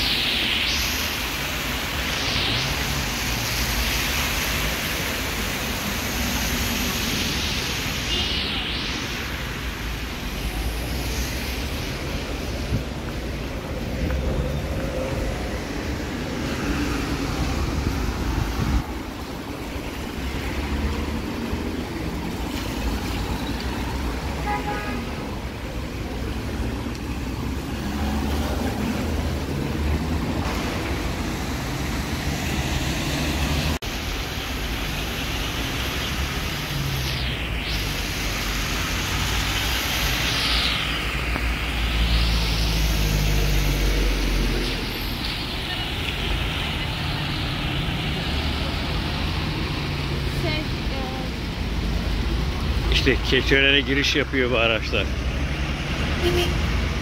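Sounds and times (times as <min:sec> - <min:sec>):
tyres hissing on wet asphalt: 0:00.0 - 0:57.0
vehicles passing close: 0:00.0 - 0:57.0.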